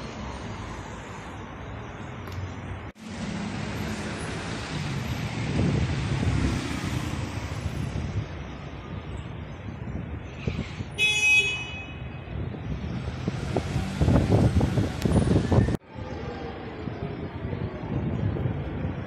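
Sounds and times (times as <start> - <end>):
cars driving past: 0.0 - 9.0, 12.3 - 15.8
short car horn beep: 11.0 - 12.0.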